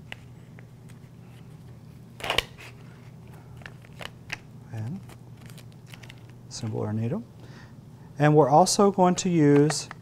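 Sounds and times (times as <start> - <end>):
packaging crinkling rip: 2.2 - 2.8, 3.6 - 6.4.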